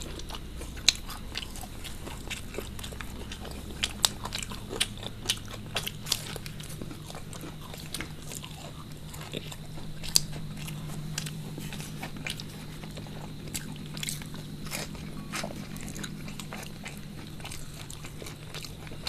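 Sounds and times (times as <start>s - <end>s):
crunching and chewing snacks: 0.0s - 19.0s
steady low hum: 0.0s - 19.0s.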